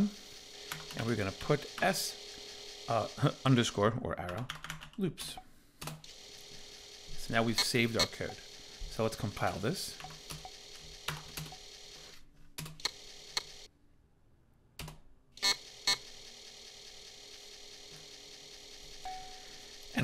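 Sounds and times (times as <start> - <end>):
computer keyboard keystrokes: 0.7 - 1.0, 4.2 - 5.0
faint hum: 5.1 - 20.0.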